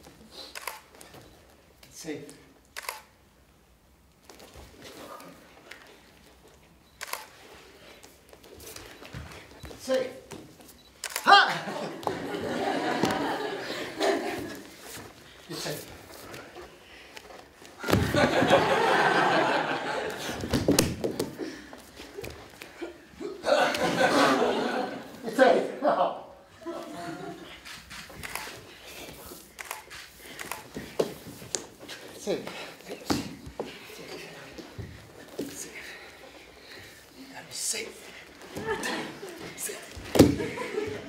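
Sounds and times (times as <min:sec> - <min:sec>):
camera shutter double click: 0:02.8 - 0:03.1, 0:11.0 - 0:11.3
people laughing: 0:11.3 - 0:15.0, 0:17.8 - 0:27.7, 0:38.4 - 0:41.0.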